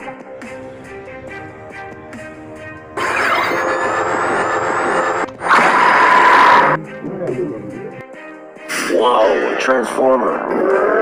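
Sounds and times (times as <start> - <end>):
background music: 0.0 - 11.0
noisy rush with steady tone: 0.6 - 6.8.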